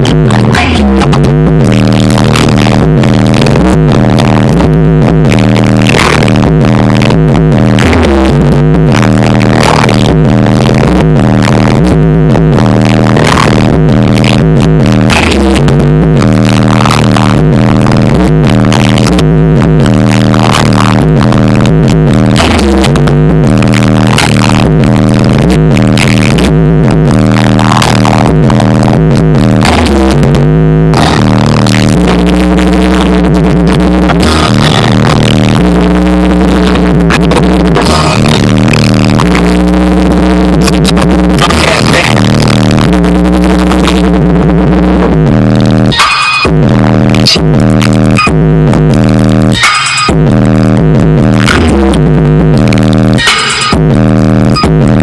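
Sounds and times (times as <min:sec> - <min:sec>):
bass-heavy music through car stereo: 0:00.0 - 0:55.0.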